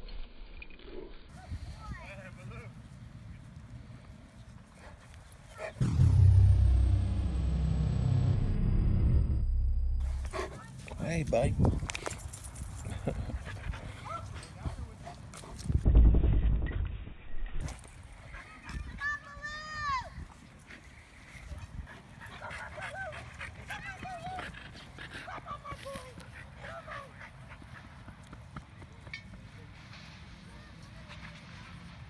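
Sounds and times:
low handling rumble: 0:05.8 - 0:10.9
wind rumble on microphone: 0:11.1 - 0:12.2, 0:14.6 - 0:17.7.

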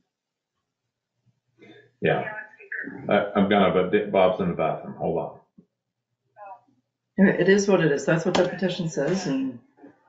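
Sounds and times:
faint vocal sound: 0:02.0 - 0:05.3.

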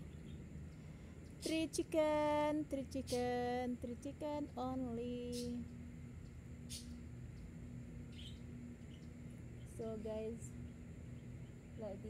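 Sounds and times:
faint steady low hum: 0:00.0 - 0:12.0.

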